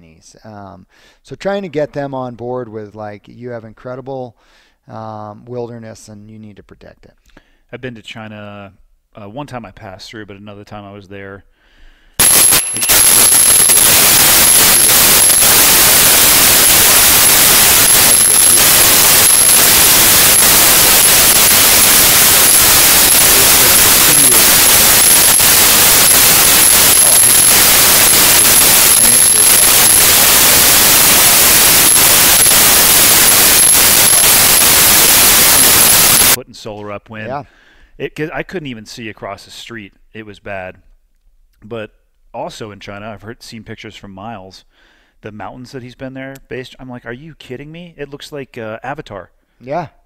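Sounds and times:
harsh static hiss: 12.2s - 36.4s.

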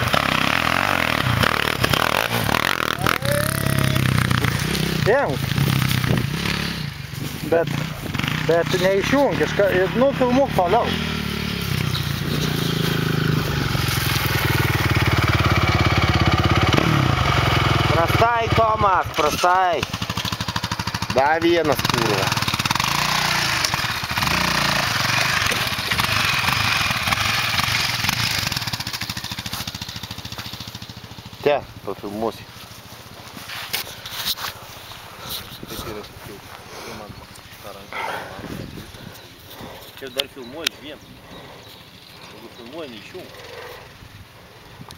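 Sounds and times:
faint outdoor background noise: 0.0s - 44.9s
quad bike engine under throttle: 0.0s - 44.9s
person calling out: 2.8s - 4.3s
short vocal sounds: 2.8s - 4.4s.

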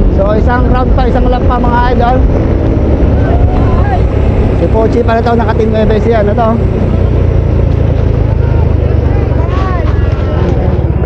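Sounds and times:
low engine drone: 0.0s - 11.0s
wind rumble on microphone: 0.0s - 11.0s.

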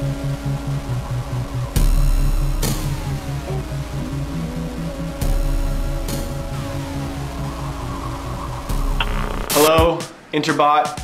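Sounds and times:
pulsing electronic bass line: 0.0s - 9.9s
heavy hit with falling sweep: 6.1s - 10.0s.

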